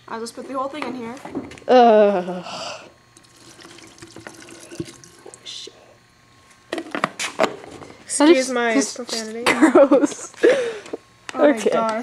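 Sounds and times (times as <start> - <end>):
water trickling into a jar: 3.2 - 5.5.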